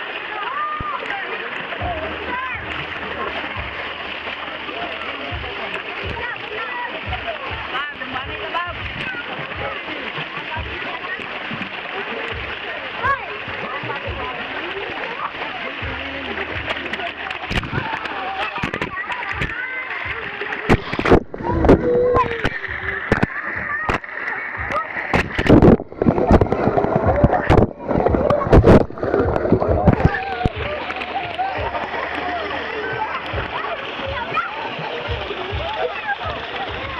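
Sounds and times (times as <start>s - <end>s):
loud splashes: 0.0s - 36.9s
water splashing: 0.0s - 36.9s
children shouting: 0.2s - 3.7s, 17.8s - 25.0s, 29.2s - 36.9s.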